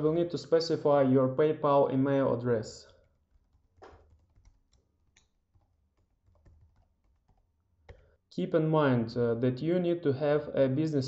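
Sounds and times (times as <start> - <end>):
computer keyboard keystrokes: 3.3 - 8.1.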